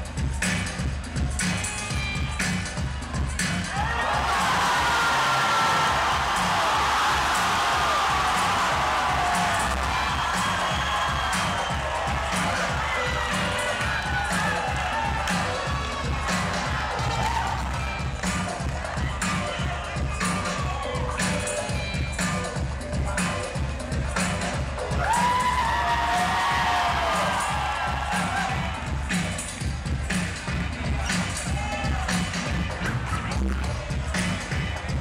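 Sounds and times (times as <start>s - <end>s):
loud dance music: 0.0s - 35.0s
crowd cheering and shouting: 0.1s - 35.0s.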